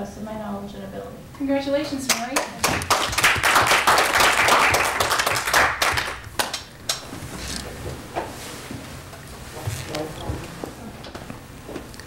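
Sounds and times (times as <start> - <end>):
people clapping: 2.0 - 7.0.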